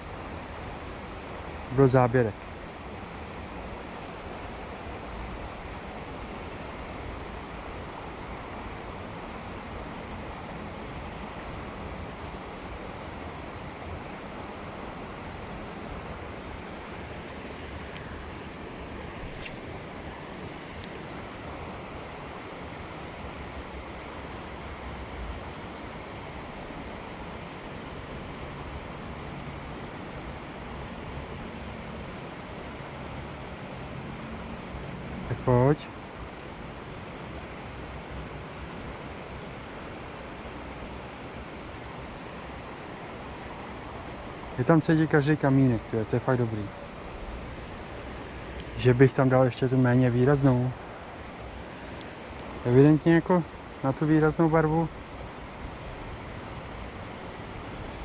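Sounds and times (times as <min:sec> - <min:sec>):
river flowing over stones: 0:00.0 - 0:58.0.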